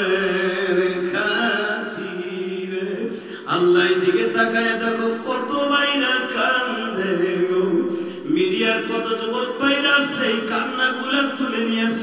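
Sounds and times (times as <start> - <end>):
man chanting through microphones: 0.0 - 12.0.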